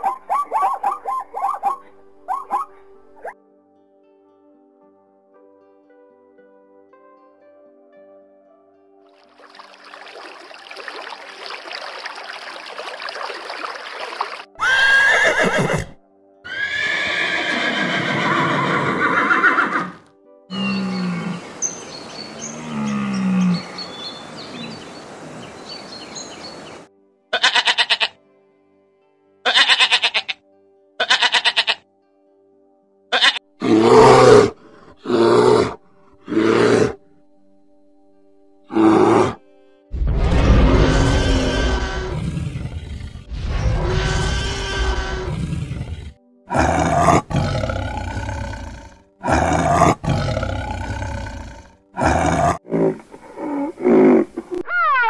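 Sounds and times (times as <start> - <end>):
animal calls: 0.0 - 3.4, 18.9 - 24.9, 43.8 - 55.0
background music: 0.0 - 24.7, 26.2 - 55.0
goat bleating: 27.3 - 28.2, 29.4 - 30.4, 31.0 - 31.8, 33.1 - 33.4.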